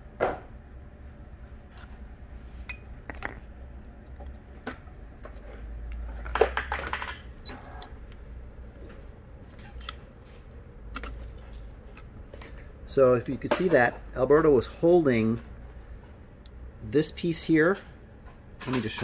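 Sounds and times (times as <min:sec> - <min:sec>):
metallic clicks and clinks: 0:04.0 - 0:06.4.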